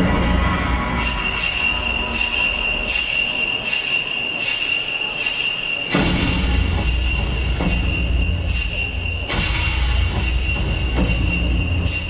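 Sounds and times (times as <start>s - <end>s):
small bells shaken rhythmically: 0.8s - 12.0s.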